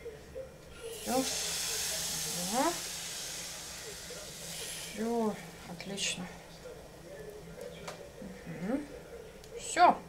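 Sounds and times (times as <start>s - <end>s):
batter sizzling in a pan: 0.8s - 6.8s.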